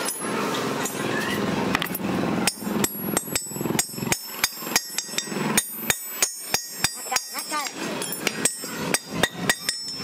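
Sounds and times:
hammer striking steel: 1.7 - 10.0.

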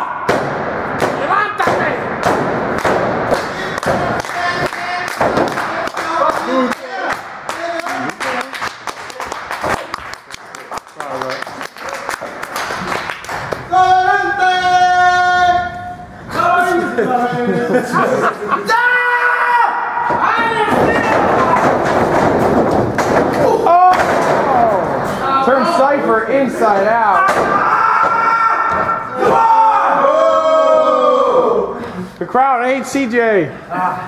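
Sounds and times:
sharp thumps and claps: 0.3 - 13.7, 20.1 - 24.5.

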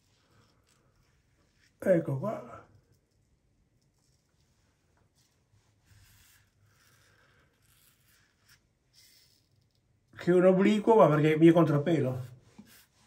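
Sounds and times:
razor scraping stubble: 6.0 - 9.9.

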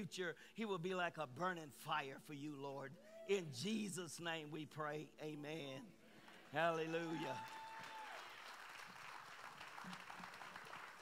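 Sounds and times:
faint applause: 6.4 - 11.0.

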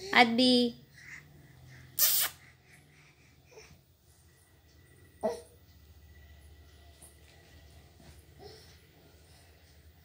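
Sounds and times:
faint low hum: 0.0 - 10.0
baby sharp vocal sound: 2.0 - 2.5.

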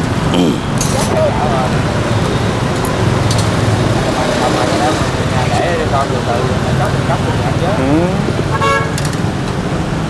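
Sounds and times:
road traffic: 0.0 - 10.0
faint voices: 0.2 - 2.8, 3.7 - 8.4.

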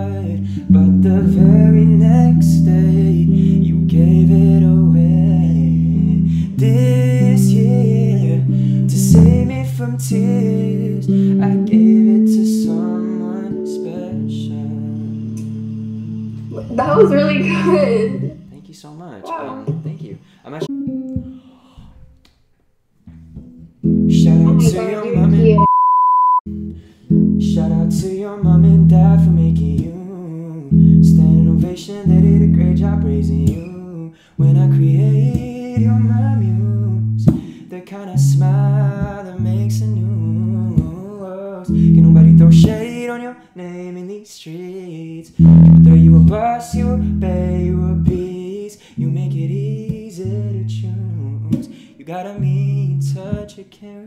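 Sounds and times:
man singing: 0.0 - 18.5, 24.1 - 25.7, 27.4 - 54.0
strummed guitar: 0.0 - 18.6, 19.3 - 22.1, 23.1 - 25.6, 26.5 - 43.2, 45.4 - 53.6
short high beep: 24.8 - 26.4.

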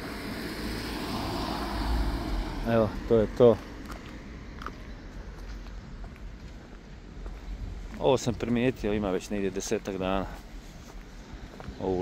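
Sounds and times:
car driving past: 0.0 - 5.1.

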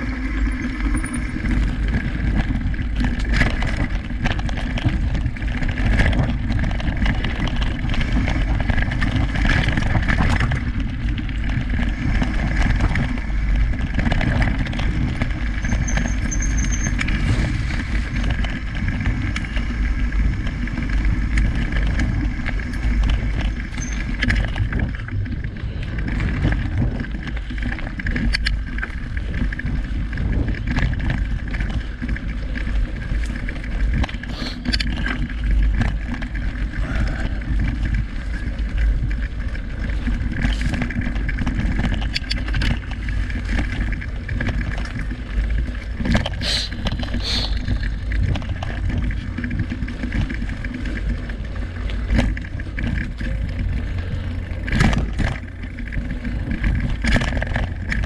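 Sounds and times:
bike clicks and rattles: 0.0 - 58.0
bike tyres rumbling on dirt: 0.0 - 58.0.

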